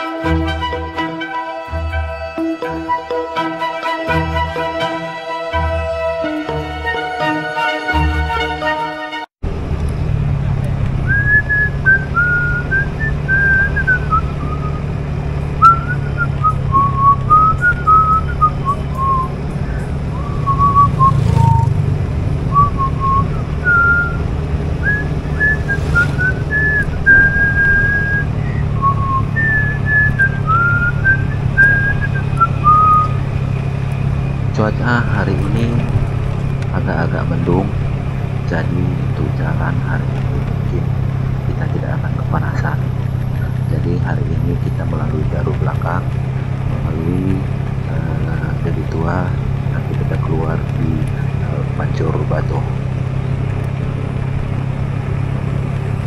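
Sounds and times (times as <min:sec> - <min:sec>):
motorcycle engine drone: 0:09.4 - 0:56.0
person whistling a tune: 0:11.1 - 0:14.8, 0:15.6 - 0:21.7, 0:22.5 - 0:24.2, 0:24.8 - 0:33.2.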